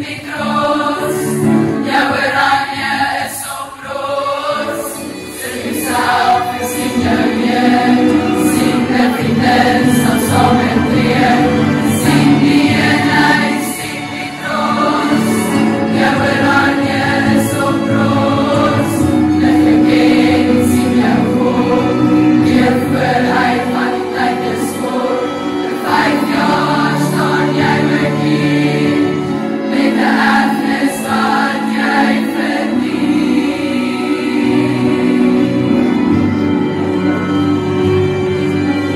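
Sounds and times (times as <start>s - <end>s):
girls choir singing: 0.0s - 38.9s.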